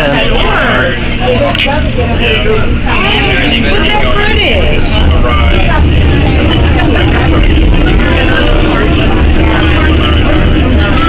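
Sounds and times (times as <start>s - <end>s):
background voices: 0.0s - 11.0s
train car low rumble: 0.0s - 11.0s.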